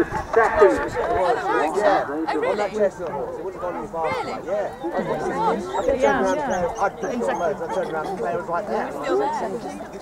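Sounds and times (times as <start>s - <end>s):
people chatting: 0.0s - 10.0s.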